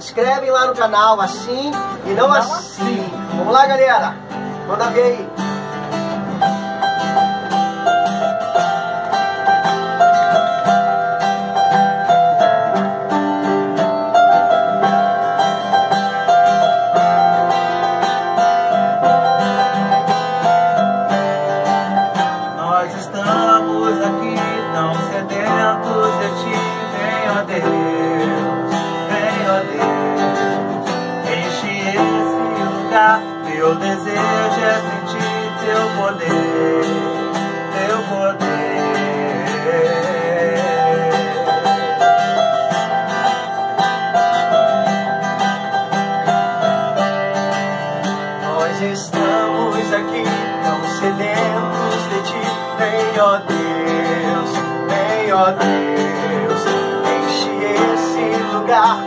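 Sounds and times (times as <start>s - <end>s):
acoustic guitar: 0.0s - 59.0s
electronic keyboard: 0.0s - 59.0s
men singing: 2.1s - 3.2s, 22.6s - 30.6s, 31.3s - 42.2s, 48.5s - 59.0s.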